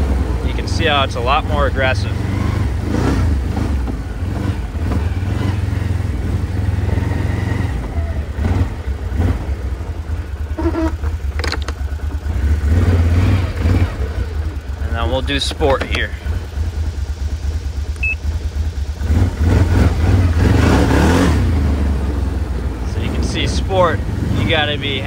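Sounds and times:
atv engine under throttle: 0.0 - 25.0.

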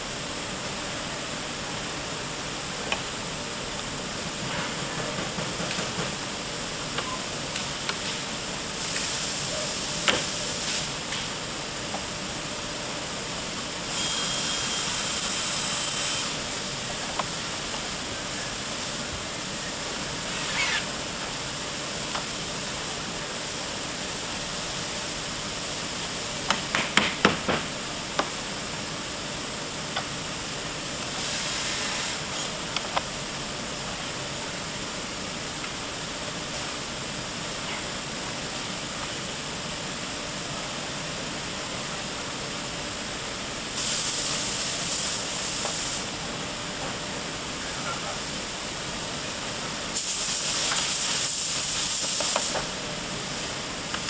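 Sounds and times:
steady factory hiss: 0.0 - 54.0
power tool whine: 13.9 - 16.4.

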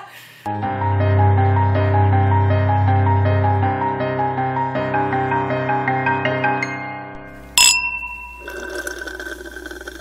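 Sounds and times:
liquid pouring and gurgling: 7.6 - 10.0.

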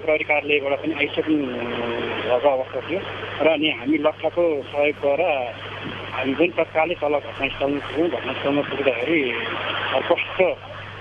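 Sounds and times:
man speaking: 0.0 - 10.6
steady low hum: 0.0 - 11.0.

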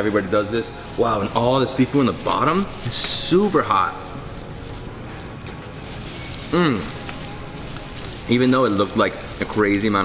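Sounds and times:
restaurant background noise: 0.0 - 10.0.

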